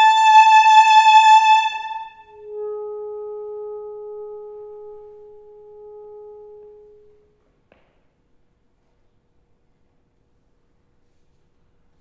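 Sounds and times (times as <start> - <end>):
alto saxophone note: 1.9 - 7.4.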